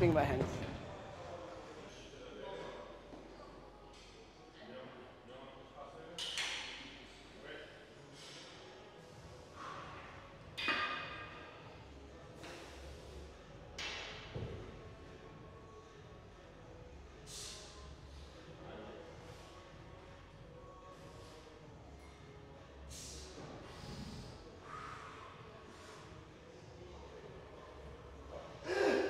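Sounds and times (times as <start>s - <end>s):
faint gym room sound: 0.0s - 29.0s.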